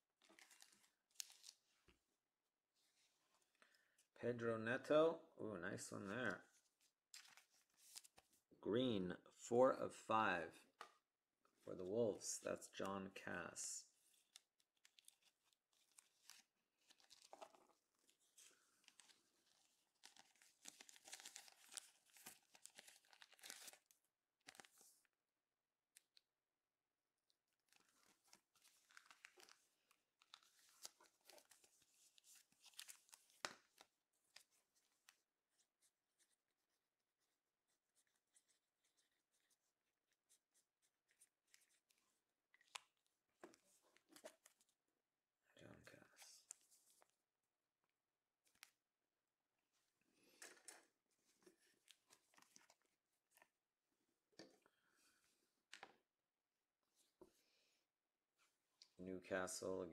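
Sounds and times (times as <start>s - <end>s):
cards rustling in plastic sleeves: 0.2s - 1.9s, 5.8s - 8.4s, 13.9s - 25.1s, 27.5s - 44.8s, 50.2s - 53.6s.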